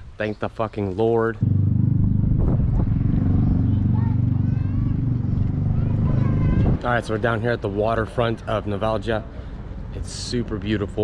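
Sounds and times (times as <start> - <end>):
motor engine running: 1.4 - 6.8
faint voices: 2.8 - 11.0.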